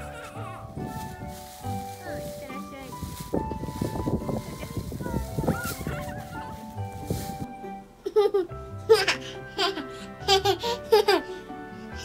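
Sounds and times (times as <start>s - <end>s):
dry leaves rustling and crunching: 0.0s - 7.6s
background music: 0.0s - 12.0s
toddler laughing: 8.0s - 11.4s.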